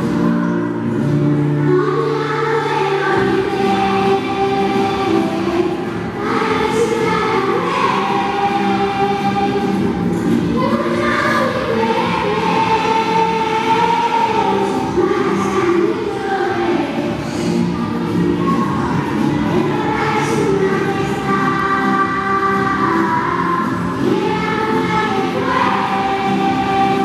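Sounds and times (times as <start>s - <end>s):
children's choir singing: 0.0s - 27.0s.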